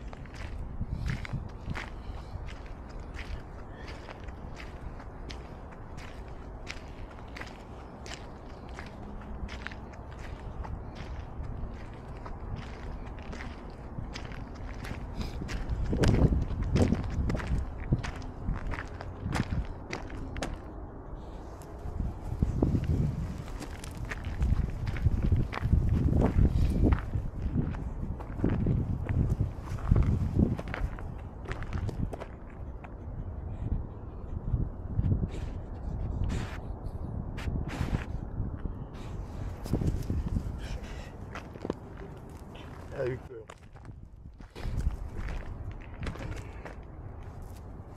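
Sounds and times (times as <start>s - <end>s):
footsteps on gravel: 0.0s - 20.7s, 21.6s - 32.6s, 39.5s - 47.7s
steady low rumble: 0.0s - 47.9s
stones clicking underfoot: 23.4s - 25.0s.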